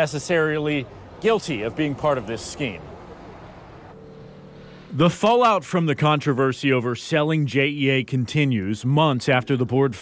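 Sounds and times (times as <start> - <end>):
low traffic hum: 0.0 - 10.0
faint tone: 3.9 - 5.0.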